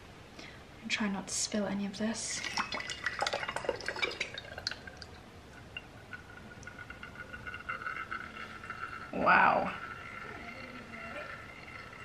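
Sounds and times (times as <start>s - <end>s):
oil trickling into glass bottle: 2.4s - 12.0s
oil dripping and clinking in bottle: 2.5s - 9.0s.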